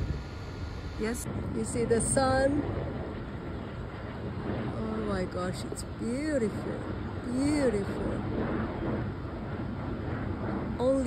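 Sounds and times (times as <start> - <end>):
low rumbling outdoor background noise: 0.0 - 11.0.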